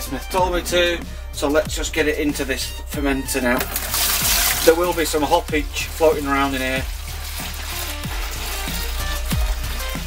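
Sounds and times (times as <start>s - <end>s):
electronic music with beat: 0.0s - 10.0s
liquid pouring into plastic bucket: 3.5s - 10.0s.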